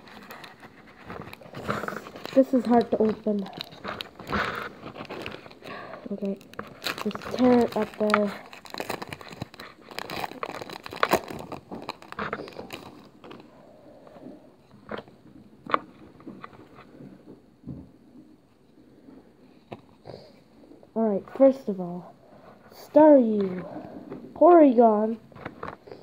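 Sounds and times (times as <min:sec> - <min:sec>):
cards clicking and rustling: 0:00.0 - 0:13.5
foil wrapper crinkling and tearing: 0:00.0 - 0:13.5.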